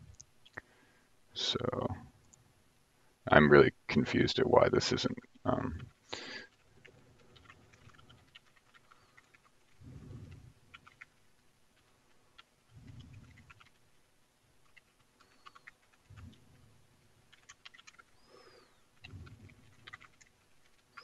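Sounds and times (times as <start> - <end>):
keyboard typing: 5.3 - 11.2, 11.8 - 13.9, 14.6 - 16.6, 17.3 - 21.0.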